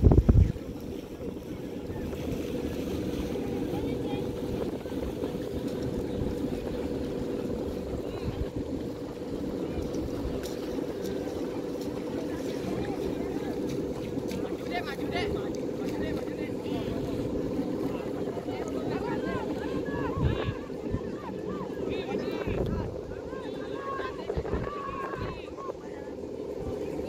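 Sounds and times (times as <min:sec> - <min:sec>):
kite hummer droning: 0:00.0 - 0:27.0.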